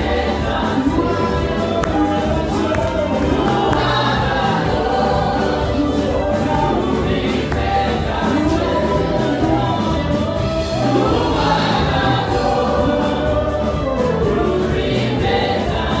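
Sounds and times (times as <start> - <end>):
group singing gospel song: 0.0 - 16.0
live band with bass and drums: 0.0 - 16.0.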